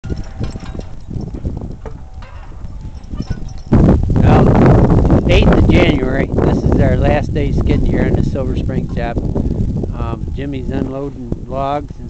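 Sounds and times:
harness chains clinking: 0.0 - 3.8
wind on microphone: 0.0 - 12.0.

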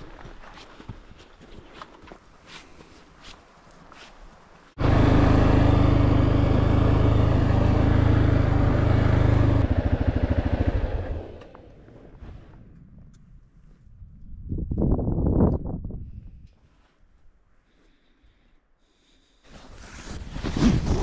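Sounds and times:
atv engine running: 4.8 - 11.8.

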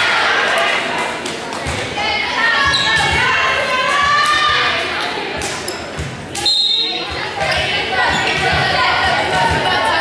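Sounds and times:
people talking in a gymnasium: 0.0 - 10.0.

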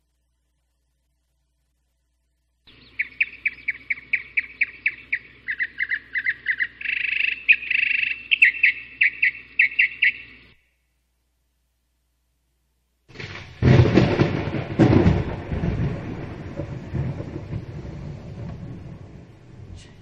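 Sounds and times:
bird chirping: 2.6 - 10.9
bird trills: 2.7 - 10.9.

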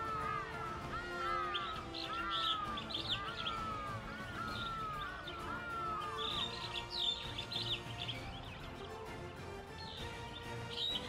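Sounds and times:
background music: 0.0 - 11.0
birds chirping: 0.0 - 11.0.

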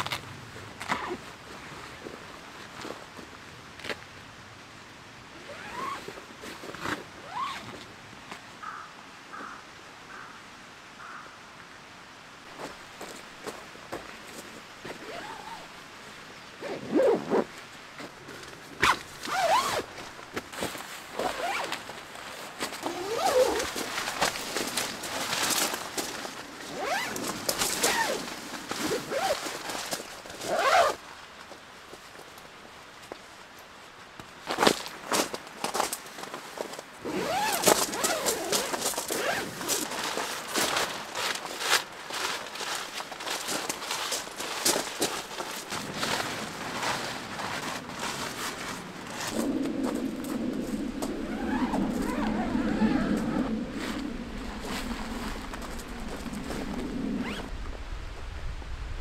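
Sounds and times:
tent zipper being pulled: 0.8 - 1.2, 5.4 - 7.8, 14.8 - 15.7, 16.6 - 17.6, 18.8 - 21.9, 22.6 - 31.0, 37.0 - 57.5
nylon tent fabric rustling: 5.4 - 7.9, 14.2 - 15.8, 16.6 - 31.1, 34.4 - 58.2.

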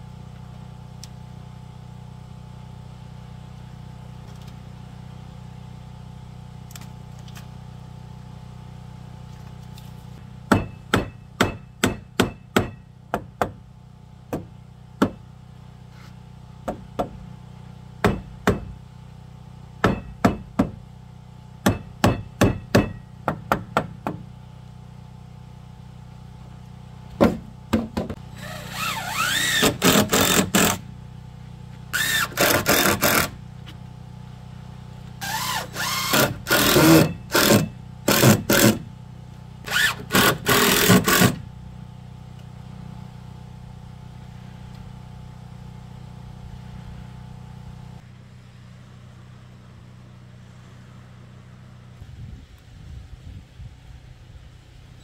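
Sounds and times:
hand tool rasping along wood: 28.4 - 30.8, 32.0 - 33.4, 35.2 - 38.8, 39.7 - 41.4.

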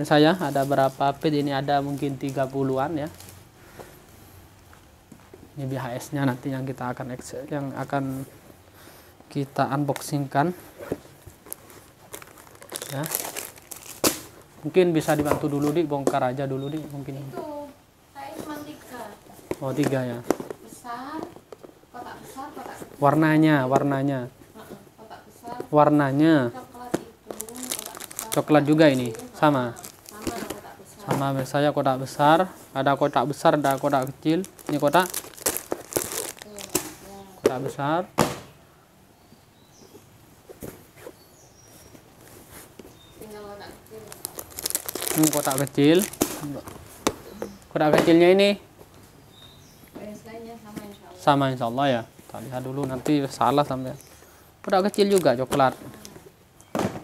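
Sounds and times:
plastic wrapping crinkling: 0.0 - 3.5, 9.9 - 17.6, 26.5 - 31.6, 32.3 - 37.8, 41.7 - 47.8, 54.7 - 56.3.

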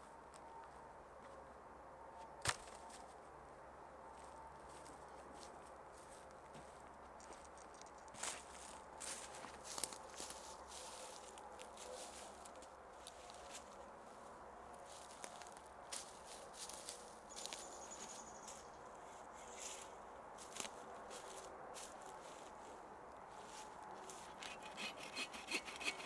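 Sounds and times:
footsteps crunching in dry leaves: 8.2 - 13.8, 14.8 - 24.6.

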